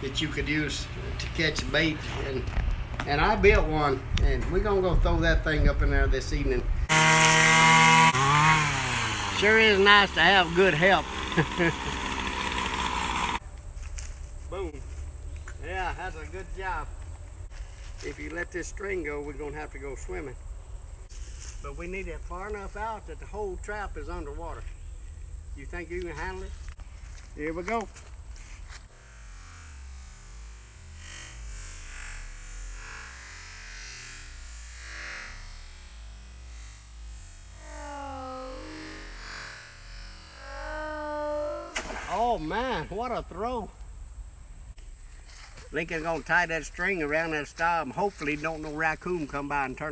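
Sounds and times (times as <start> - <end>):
string trimmer engine running: 6.9 - 13.4
slowed distorted warbling audio: 36.7 - 42.2
drawn-out sliding tones: 37.5 - 42.8.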